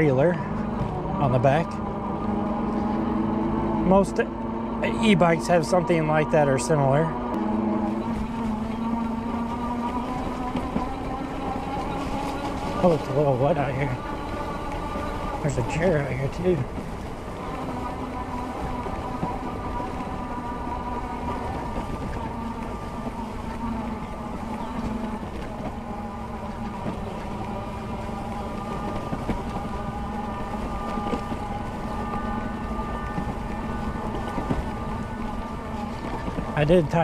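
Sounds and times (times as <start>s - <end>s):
electric bike motor whine: 0.0s - 37.0s.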